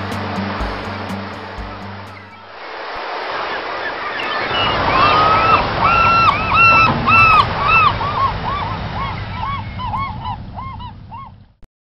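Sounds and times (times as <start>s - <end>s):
geese honking: 0.0s - 11.4s.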